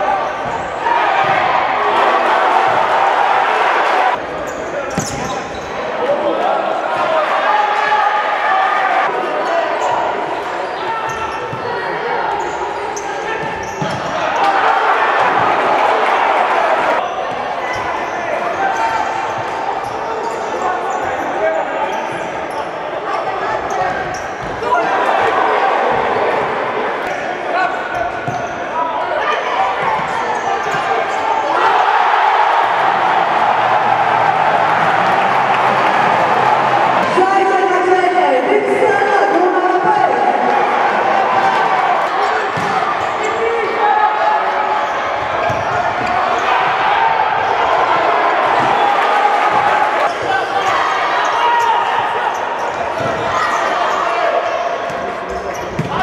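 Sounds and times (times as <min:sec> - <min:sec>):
players shouting: 0:00.0 - 0:04.4, 0:05.0 - 0:56.0
crowd voices: 0:00.0 - 0:56.0.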